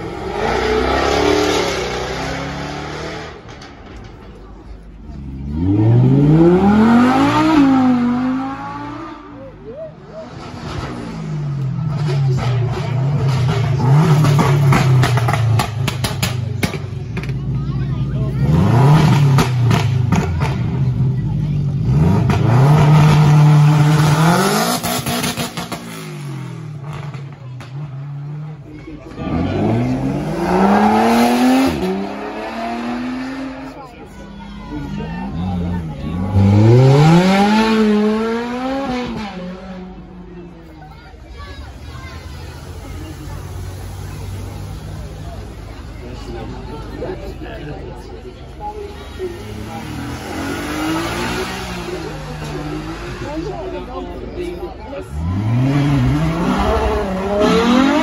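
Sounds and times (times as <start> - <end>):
sports car engines revving: 0.0 - 58.0.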